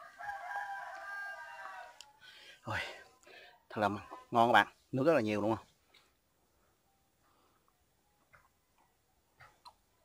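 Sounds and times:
rooster crowing: 0.0 - 2.2.

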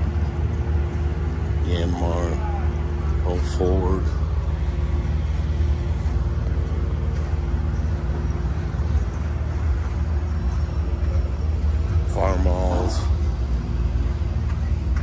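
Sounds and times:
engine running steadily: 0.0 - 15.0.

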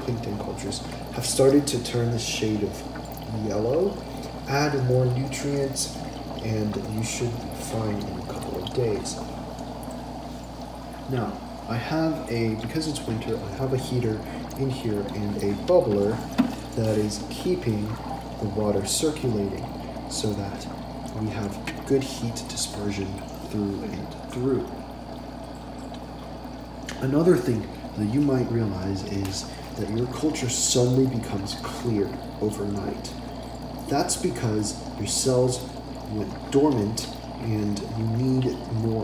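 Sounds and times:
air bubbling through water: 0.0 - 39.0
low steady hum: 0.0 - 39.0.

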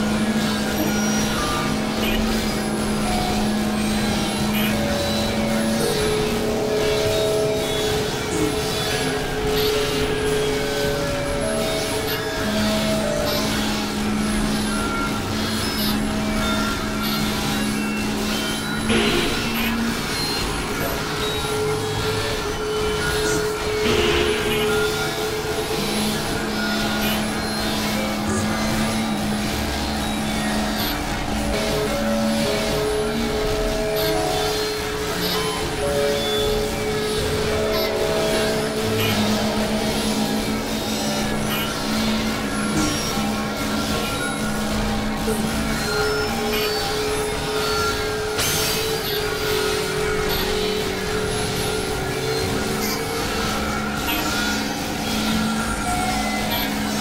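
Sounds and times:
synthesizer drone music: 0.0 - 57.0.

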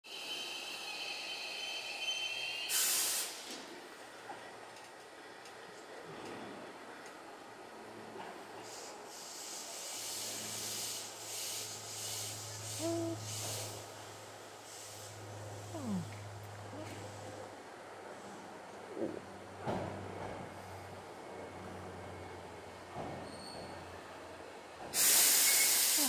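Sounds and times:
electric train rolling: 0.1 - 15.6, 17.5 - 26.0
short loud hiss: 2.7 - 3.5, 25.0 - 26.0.

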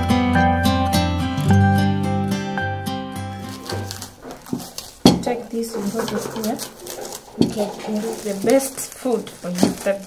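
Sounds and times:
plucked-string music: 0.0 - 8.5.

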